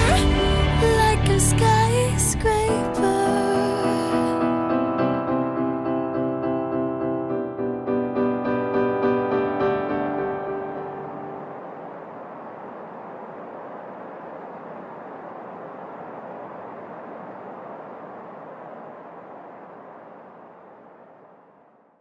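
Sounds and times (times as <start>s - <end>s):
piano notes: 0.0s - 11.8s
steady rushing noise: 9.8s - 22.0s.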